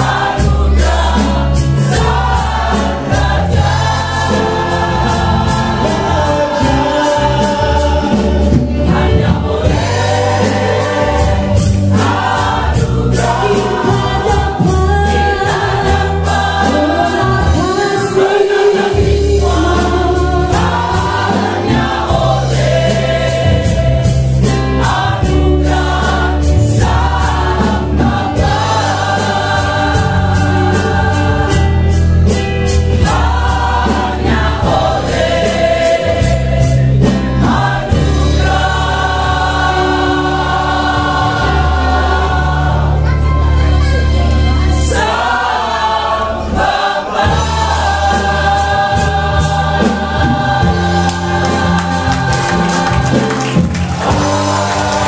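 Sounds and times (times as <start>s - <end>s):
amplified accompaniment with bass and beat: 0.0s - 55.0s
mixed choir singing gospel: 0.0s - 55.0s.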